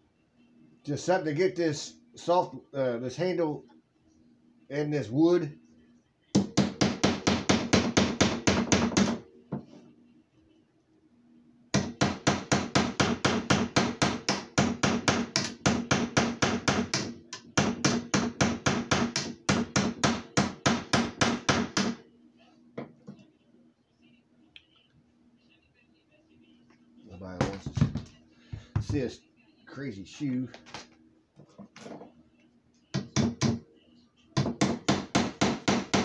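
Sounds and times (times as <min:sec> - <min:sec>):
metal hammering on nail: 0:06.4 - 0:09.2, 0:11.8 - 0:22.0, 0:34.4 - 0:36.0.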